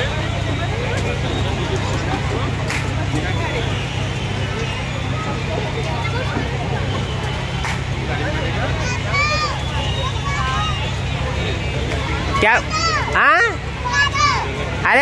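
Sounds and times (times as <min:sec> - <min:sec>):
children calling: 0:00.0 - 0:15.0
crowd chatter: 0:00.0 - 0:15.0.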